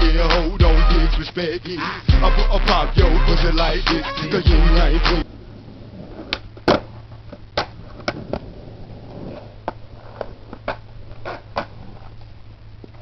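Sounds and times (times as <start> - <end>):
skateboard clacking on concrete: 6.2 - 12.3.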